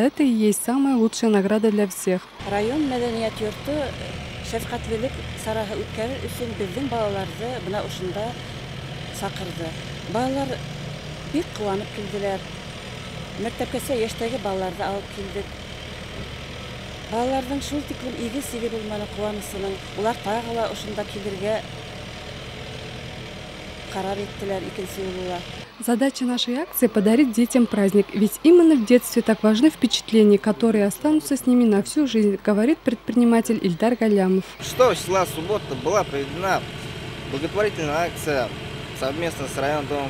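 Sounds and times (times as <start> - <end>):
woman speaking: 0.0 - 8.4, 9.1 - 10.6, 11.3 - 12.4, 13.4 - 15.5, 17.1 - 21.6, 23.9 - 34.6
low engine hum: 2.2 - 25.8, 32.7 - 40.0
motor idling: 2.2 - 25.8, 34.5 - 40.0.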